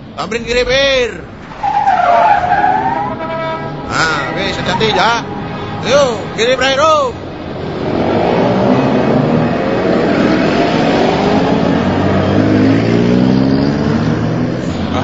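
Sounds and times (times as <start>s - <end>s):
vehicle engine revving: 7.2s - 15.0s.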